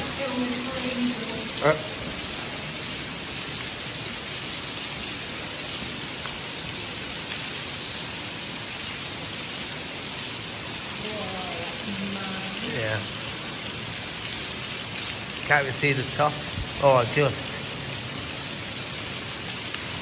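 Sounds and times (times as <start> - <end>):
water falling and spattering: 0.0 - 20.0.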